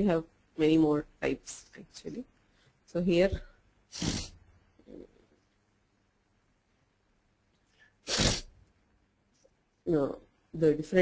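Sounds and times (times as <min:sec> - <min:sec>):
person sneezing: 0:08.0 - 0:08.5.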